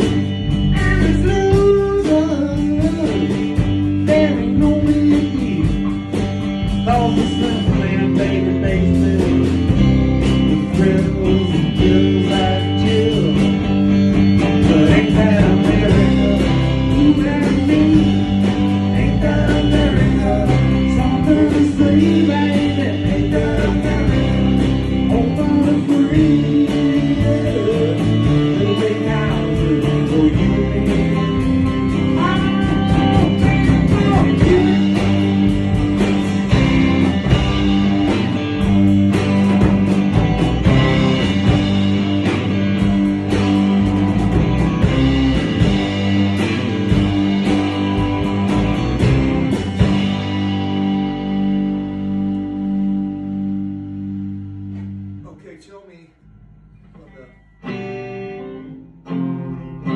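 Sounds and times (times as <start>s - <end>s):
rock band with electric guitars: 0.0s - 55.3s, 56.2s - 59.9s.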